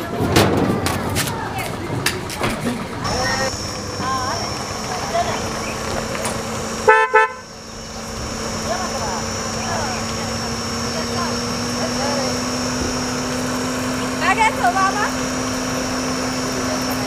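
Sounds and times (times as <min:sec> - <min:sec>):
steady low hum: 0:01.7 - 0:17.0
car horn beeps: 0:06.8 - 0:07.7.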